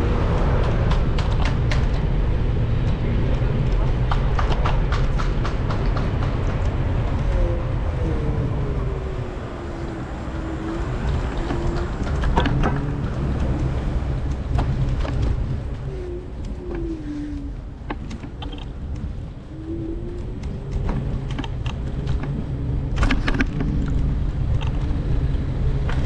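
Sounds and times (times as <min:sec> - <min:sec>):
rapid clicking and rattling: 0:00.0 - 0:08.0, 0:09.7 - 0:17.0, 0:20.2 - 0:26.0
road rumble: 0:00.0 - 0:26.0
wind: 0:00.0 - 0:26.0.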